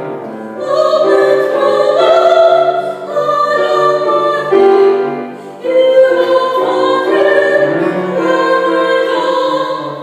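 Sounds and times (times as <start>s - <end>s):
piano accompaniment: 0.0s - 10.0s
woman singing classical: 0.1s - 10.0s.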